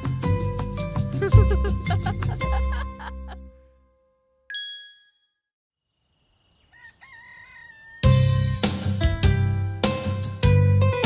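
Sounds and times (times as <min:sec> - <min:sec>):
rooster crowing: 0:06.6 - 0:08.4.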